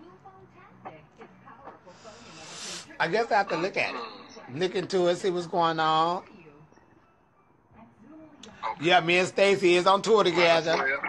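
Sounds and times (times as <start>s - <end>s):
man exhaling smoke: 2.1s - 2.9s.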